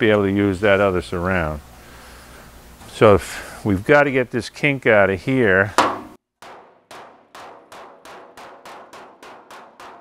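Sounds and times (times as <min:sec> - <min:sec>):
hammer striking sheet metal: 0:05.8 - 0:10.0.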